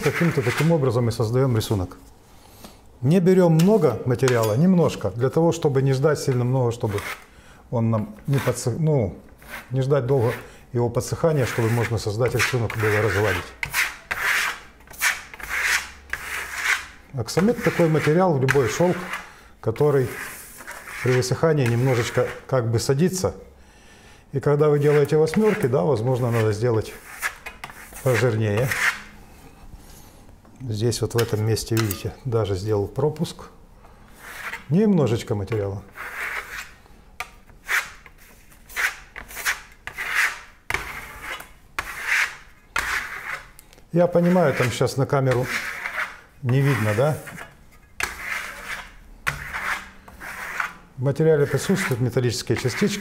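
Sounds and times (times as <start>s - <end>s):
steel trowel scraping board: 0.0s - 0.9s, 6.2s - 7.2s, 9.4s - 10.5s, 11.4s - 22.5s, 24.8s - 29.1s, 34.2s - 34.7s, 35.5s - 36.8s, 37.6s - 43.5s, 44.2s - 50.8s, 51.4s - 53.0s
trowel swishing on board: 44.2s - 50.8s.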